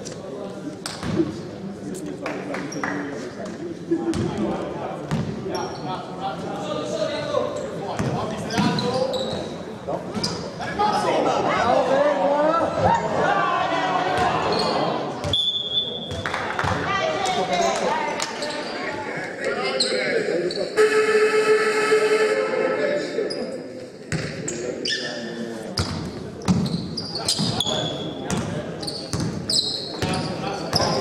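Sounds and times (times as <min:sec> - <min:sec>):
players shouting: 0:10.8 - 0:15.2
electric horn: 0:20.8 - 0:23.0
high whistle blast: 0:20.8 - 0:23.1.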